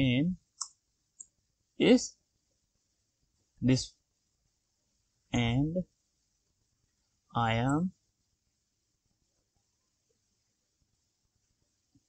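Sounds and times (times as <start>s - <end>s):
person speaking: 1.8s - 2.2s, 3.6s - 4.0s, 5.4s - 5.9s, 7.3s - 8.0s.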